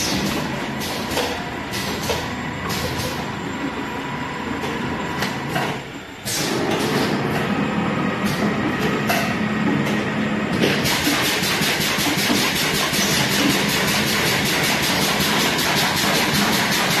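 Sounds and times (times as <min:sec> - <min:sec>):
filling and capping machine running: 0:00.0 - 0:17.0
fast even machine clatter: 0:10.6 - 0:17.0.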